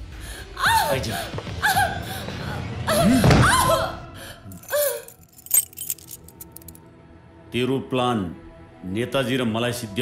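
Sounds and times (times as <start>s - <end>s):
metallic clicks and jingles: 4.5s - 6.8s.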